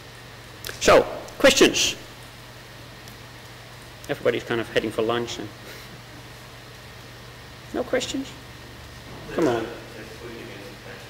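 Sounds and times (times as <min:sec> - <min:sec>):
steady hiss: 0:00.0 - 0:08.1, 0:09.0 - 0:11.0
low constant hum: 0:00.0 - 0:11.0.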